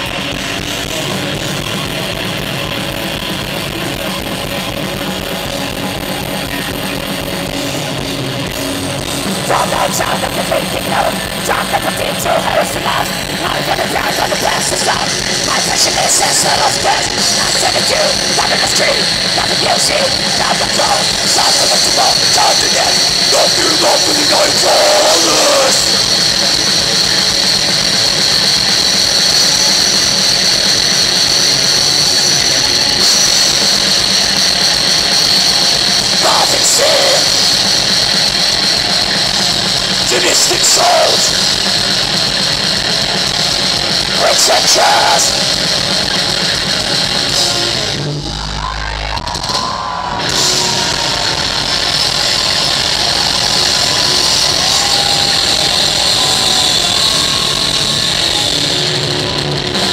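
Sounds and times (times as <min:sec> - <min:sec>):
metal band playing live: 0:00.0 - 0:59.9.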